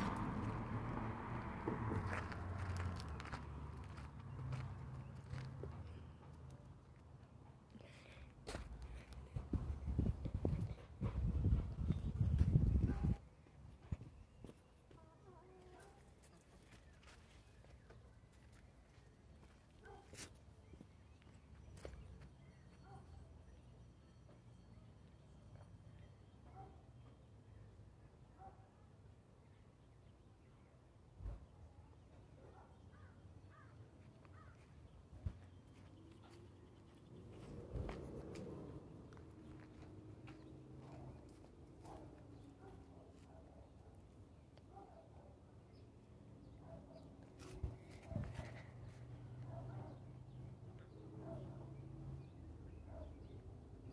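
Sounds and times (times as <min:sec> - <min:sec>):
faint footsteps outdoors: 0:00.0 - 0:27.4, 0:31.2 - 0:44.9, 0:46.0 - 0:50.9.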